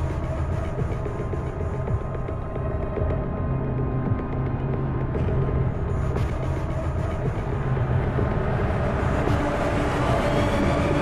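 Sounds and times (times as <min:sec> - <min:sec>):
low steady drone: 0:00.0 - 0:11.0.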